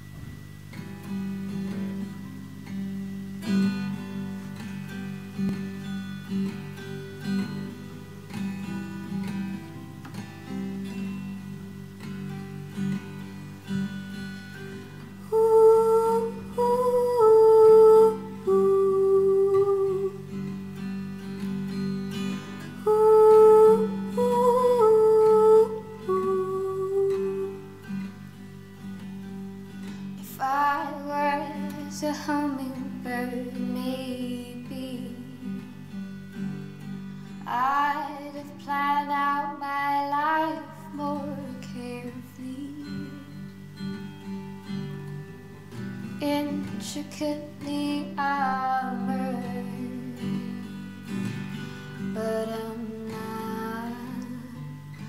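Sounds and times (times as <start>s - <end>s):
fingerpicked classical guitar: 0.0s - 55.0s
woman singing wordless melody: 15.2s - 20.6s, 22.6s - 28.1s, 30.2s - 35.8s, 37.4s - 43.9s, 46.1s - 55.0s.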